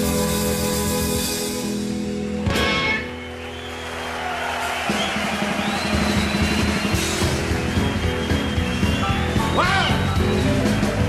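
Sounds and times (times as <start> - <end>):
live blues band playing: 0.0 - 11.0
audience cheering and applause: 2.6 - 11.0.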